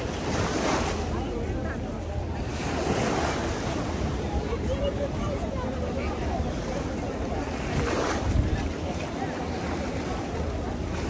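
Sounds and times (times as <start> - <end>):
faint voices: 0.0 - 11.0
small waves washing on shore: 0.0 - 11.0
wind buffeting microphone: 4.2 - 11.0.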